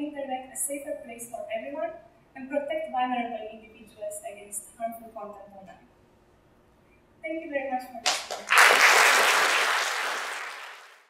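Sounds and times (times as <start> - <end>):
audience applauding: 8.1 - 11.0.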